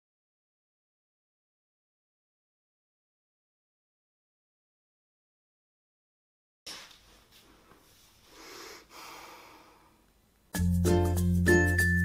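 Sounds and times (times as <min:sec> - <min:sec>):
woman breathing softly: 0:08.2 - 0:10.1.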